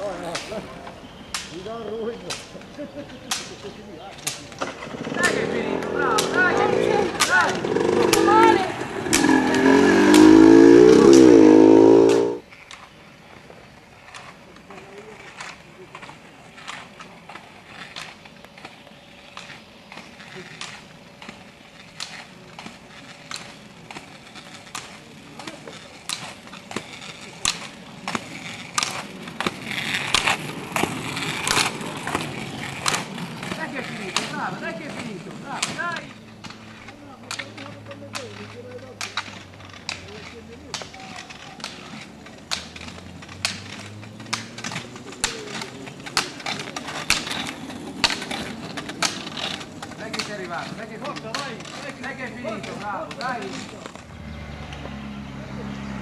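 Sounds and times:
roller ski wheels rolling: 0.0s - 56.0s
ski poles clicking on asphalt: 0.0s - 56.0s.

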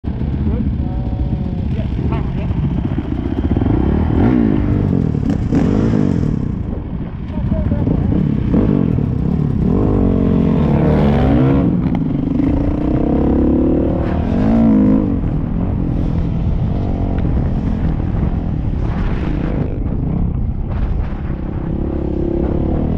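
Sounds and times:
dirt bike engines revving: 0.1s - 22.9s.

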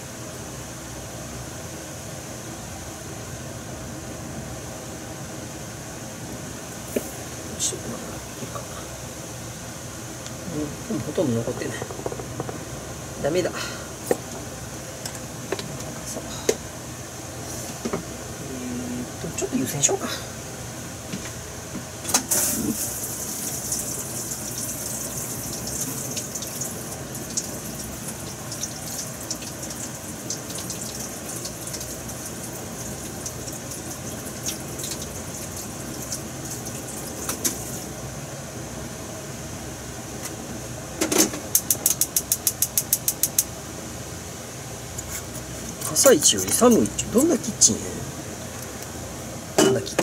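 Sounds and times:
gas burner hissing: 4.5s - 38.8s
stove igniter clicks: 41.5s - 43.5s.

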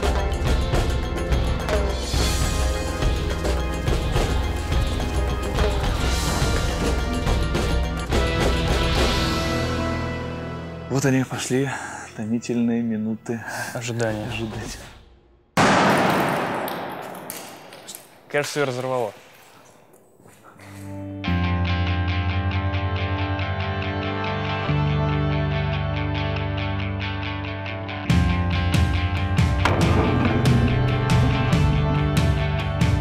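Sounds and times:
rock music with guitar: 0.0s - 10.8s, 21.0s - 33.0s
loud bang echoing in a hall: 15.6s - 18.0s, 29.6s - 32.0s
sharp percussive hits: 15.6s - 18.2s, 29.6s - 32.4s.

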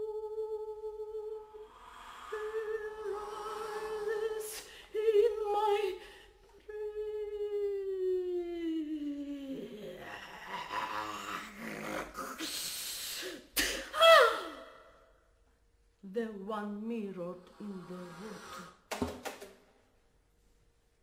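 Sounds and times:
woman singing: 0.0s - 10.1s
breathy airy noise: 1.5s - 5.0s.

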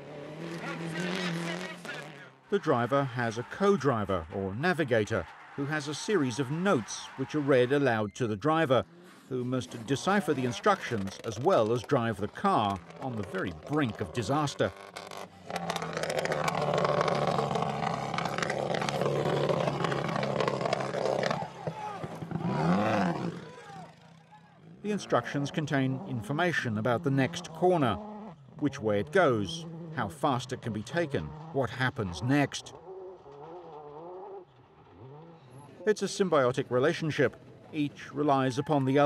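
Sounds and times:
car engine running: 0.0s - 7.9s, 8.8s - 33.7s.

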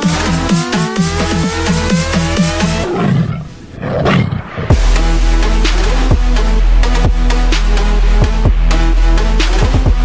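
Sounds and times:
trap music: 0.0s - 2.9s, 4.7s - 10.0s
tiger roar sample: 0.0s - 10.0s
heavy deep bass: 4.7s - 10.0s.

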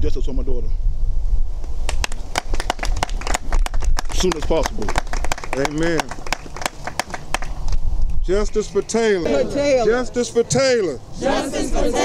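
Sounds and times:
wind rumble on microphone: 0.0s - 9.2s
people clapping: 1.9s - 7.8s, 8.4s - 9.0s.

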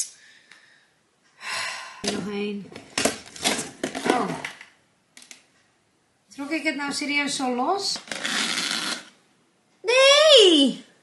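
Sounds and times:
woman exclaiming: 9.8s - 10.9s.

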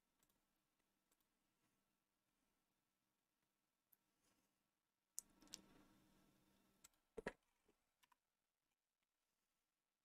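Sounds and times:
computer mouse clicks: 5.2s - 5.8s.

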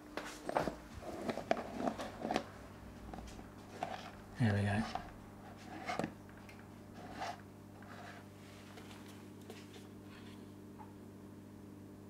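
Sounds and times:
steady low hum: 0.0s - 12.0s
fish food pot rustling: 0.3s - 6.2s, 6.9s - 10.4s.

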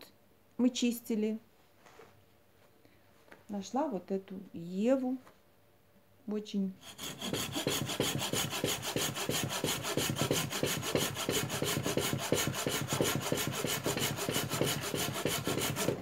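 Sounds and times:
pruning saw cutting branch: 6.8s - 16.0s.

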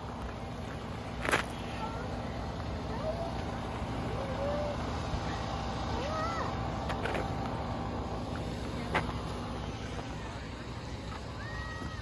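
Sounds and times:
low engine hum: 0.0s - 12.0s
faint distant voices: 1.4s - 12.0s.

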